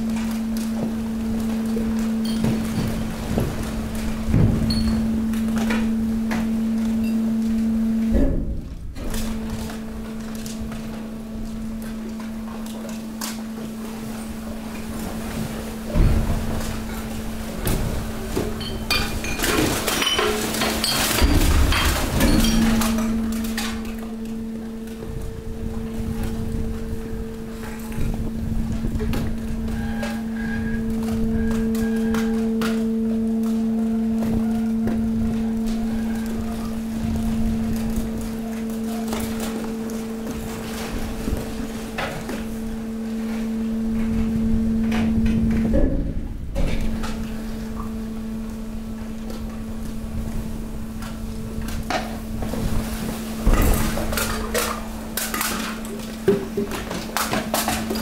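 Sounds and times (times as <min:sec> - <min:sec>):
waste compactor motor hum: 0:00.0 - 0:58.0
waste crunching and clattering: 0:00.0 - 0:58.0.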